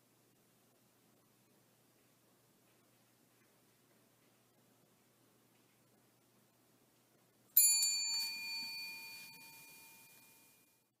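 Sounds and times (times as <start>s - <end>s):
desk service bell ding: 7.6s - 10.6s.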